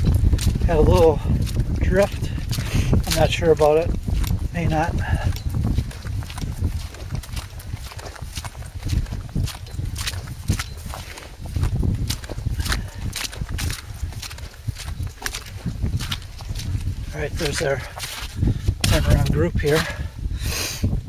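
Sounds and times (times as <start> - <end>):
footsteps on wet grass and snow: 0.0 - 21.0
wind rumble on microphone: 0.0 - 21.0.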